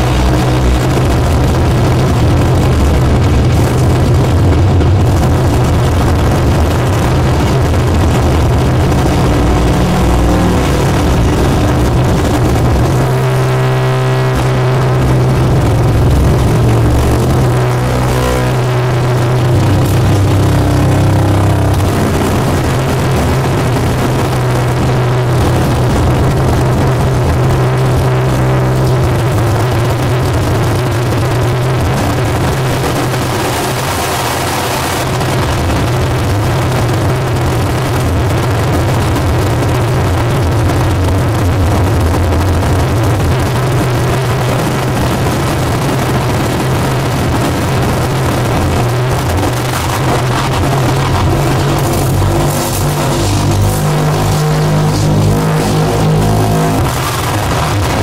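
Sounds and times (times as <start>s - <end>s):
distorted harsh noise: 0.0s - 58.0s
steady low drone: 0.0s - 58.0s.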